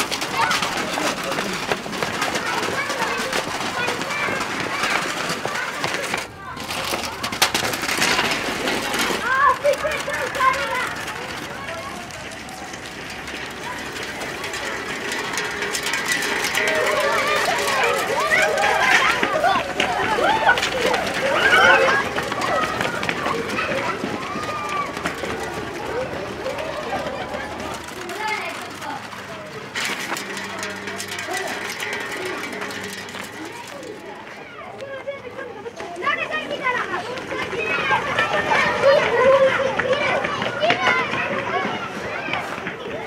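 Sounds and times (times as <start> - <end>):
children shouting and calling: 0.0 - 43.0
quick footsteps on hard street: 0.0 - 43.0.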